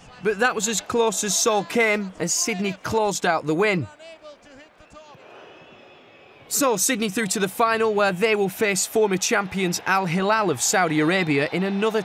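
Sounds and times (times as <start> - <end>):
stadium crowd hum: 0.0 - 12.0.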